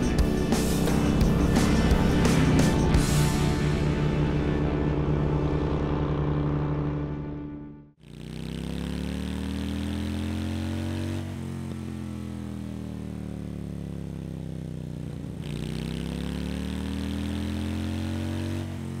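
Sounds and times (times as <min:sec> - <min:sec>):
motorcycle engine revving: 0:00.0 - 0:19.0.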